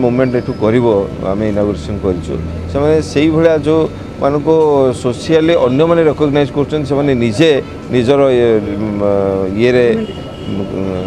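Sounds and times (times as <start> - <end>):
man speaking: 0.0 - 11.0.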